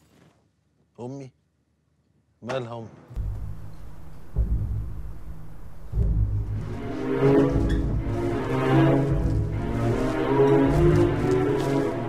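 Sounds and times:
high sustained tones: 3.2 - 12.0
low rumbling film score drone: 3.2 - 12.0.

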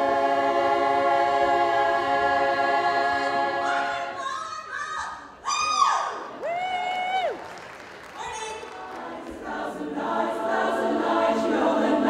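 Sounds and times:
women's chorus singing a cappella: 0.0 - 4.4, 8.8 - 12.0.

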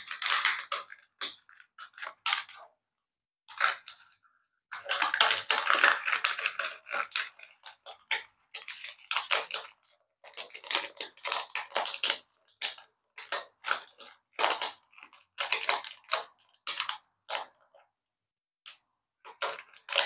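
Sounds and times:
plastic parts scraping and creaking: 3.5 - 17.8, 18.7 - 20.0.

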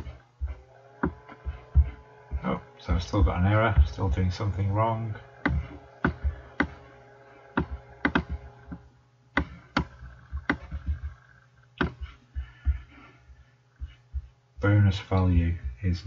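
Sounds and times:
faint steady hum: 0.0 - 16.0
keyboard and mouse clicks: 7.5 - 8.8, 9.4 - 11.2.

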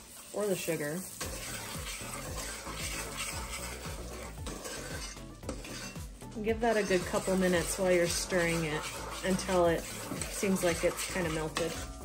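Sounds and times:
background music: 0.0 - 12.0
wooden spoon stirring in a pot: 0.0 - 12.0.

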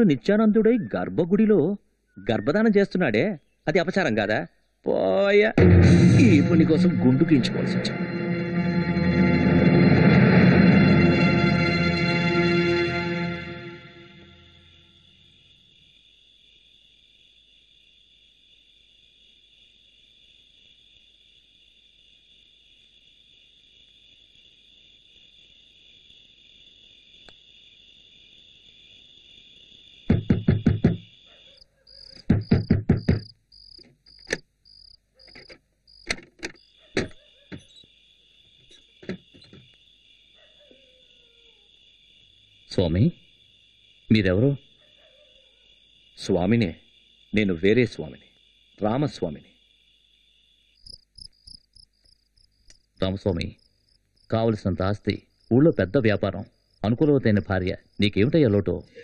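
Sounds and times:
crickets chirring: 0.0 - 5.5, 6.2 - 59.0
loud knocks on a door: 30.1 - 31.1, 32.2 - 34.0.

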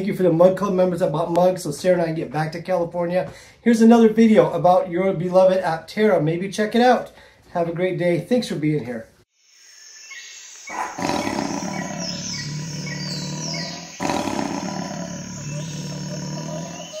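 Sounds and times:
big cat roar: 10.7 - 17.0.

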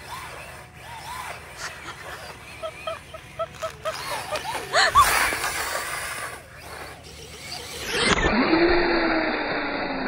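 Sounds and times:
toy motor whining: 0.0 - 10.0.

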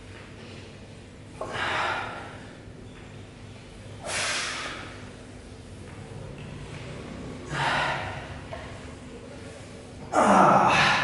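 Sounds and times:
person breathing hard: 7.5 - 8.4.

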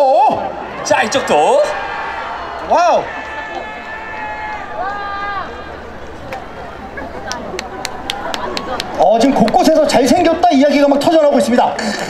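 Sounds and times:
voices calling out: 0.0 - 10.3
audience crowd noise: 0.0 - 12.0.

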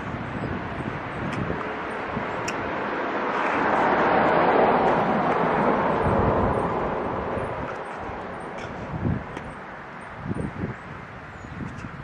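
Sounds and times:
vehicle passing: 0.6 - 10.0.

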